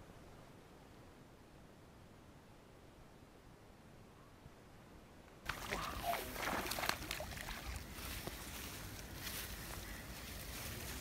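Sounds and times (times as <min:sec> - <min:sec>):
water splashing and churning: 0:05.4 - 0:08.2.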